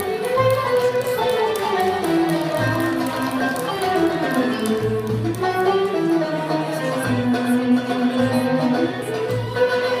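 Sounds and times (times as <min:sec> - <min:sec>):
instrumental ensemble playing: 0:00.0 - 0:10.0
light plucked notes: 0:00.0 - 0:10.0.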